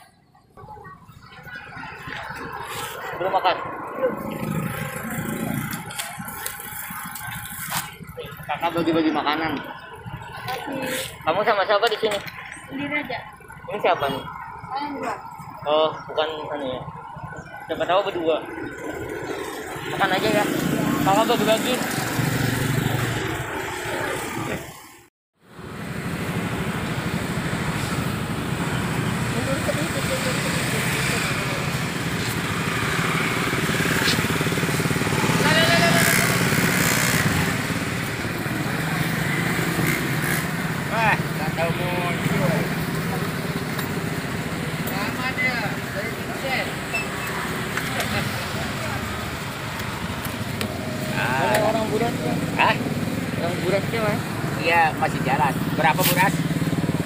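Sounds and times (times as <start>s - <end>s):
steady crowd din: 0.0s - 24.8s, 28.6s - 57.0s
indistinct market chatter: 0.0s - 57.0s.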